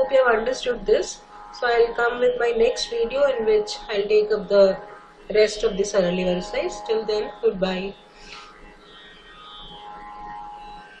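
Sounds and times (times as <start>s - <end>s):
faint musical drone: 0.0s - 11.0s.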